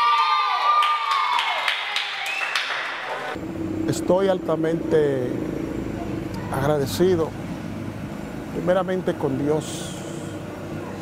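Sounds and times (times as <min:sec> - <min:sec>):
children cheering and shouting: 0:00.0 - 0:03.4
rising whoop: 0:00.0 - 0:03.4
clapping: 0:00.1 - 0:03.4
low outdoor rumble: 0:03.3 - 0:11.0.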